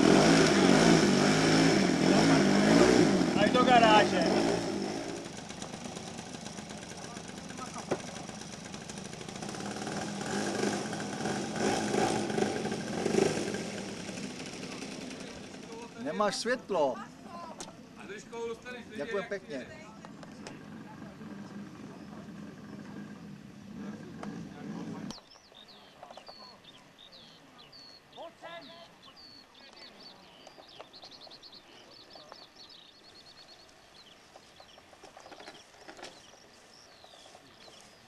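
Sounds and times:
birds chirping and trilling: 20.3s - 38.0s.

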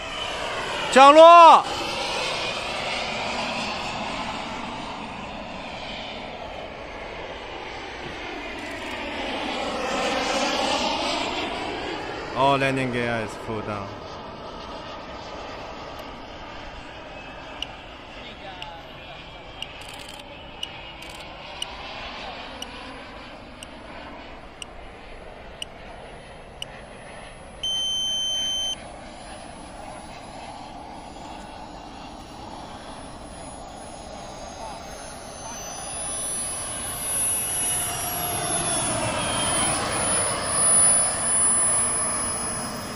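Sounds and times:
jet turbine running: 0.0s - 42.9s
sharp clicks: 8.6s - 9.0s, 19.6s - 21.8s
electronic beep: 26.6s - 28.8s, 32.5s - 42.9s.

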